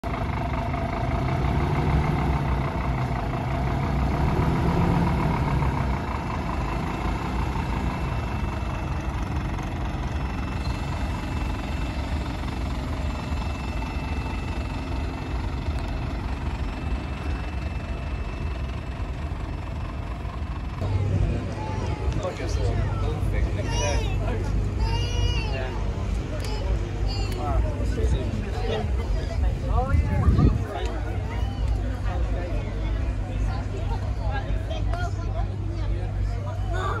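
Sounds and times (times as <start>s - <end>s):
diesel engine rumbling: 0.0s - 37.0s.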